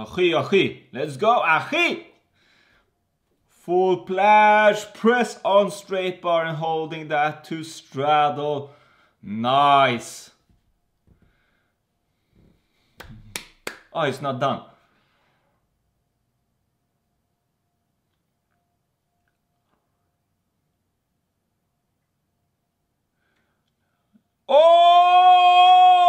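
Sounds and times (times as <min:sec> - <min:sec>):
sharp hand claps: 0:13.0 - 0:13.9
man's high-pitched ooh: 0:24.5 - 0:26.0.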